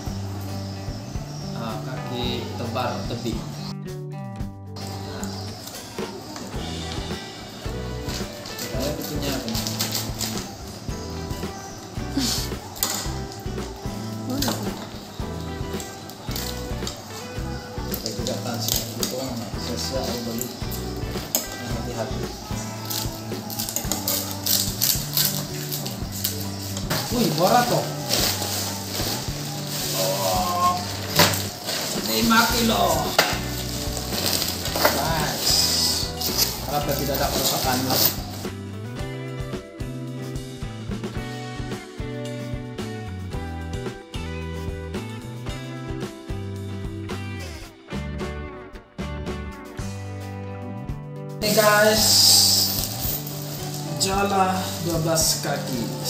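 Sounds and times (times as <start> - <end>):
low background music: 0.0 - 56.0
plastic bag crinkling and tearing: 8.4 - 10.5, 21.3 - 38.4, 51.4 - 56.0.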